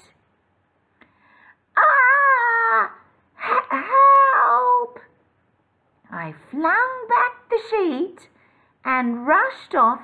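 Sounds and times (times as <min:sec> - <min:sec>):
woman screaming like a child: 0:01.8 - 0:05.0.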